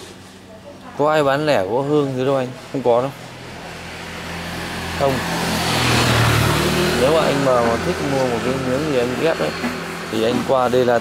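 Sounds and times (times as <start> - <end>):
vehicle driving past: 1.3 - 11.0.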